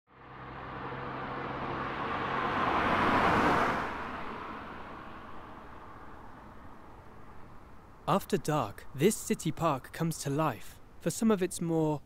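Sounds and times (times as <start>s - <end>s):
car passing by: 0.1s - 7.9s
distant traffic: 0.1s - 12.0s.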